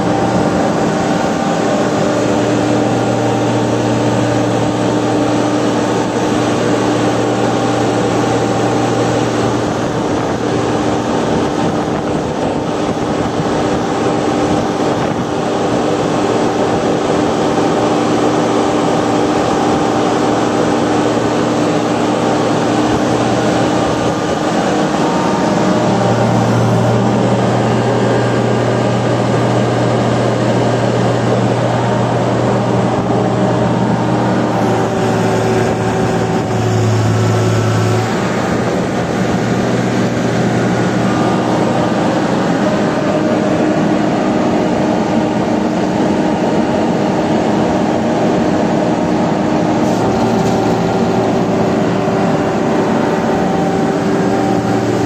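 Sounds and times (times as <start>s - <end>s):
engine running revved up: 0.0s - 55.0s.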